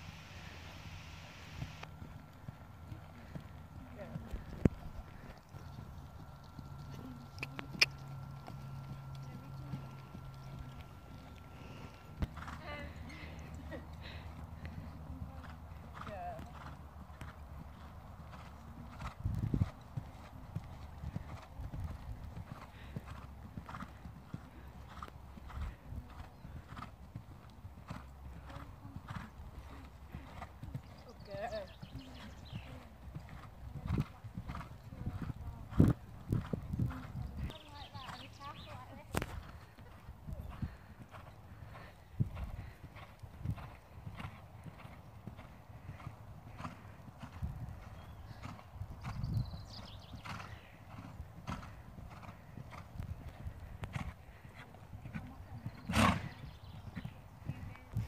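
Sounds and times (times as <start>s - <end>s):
low steady rumble: 0.0s - 49.8s
horse hoofbeats trotting: 1.5s - 58.0s.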